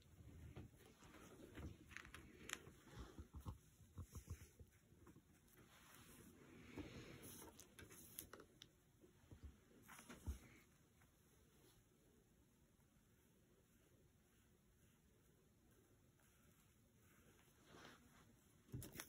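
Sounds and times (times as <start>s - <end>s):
faint taps and rustles: 0.2s - 10.7s.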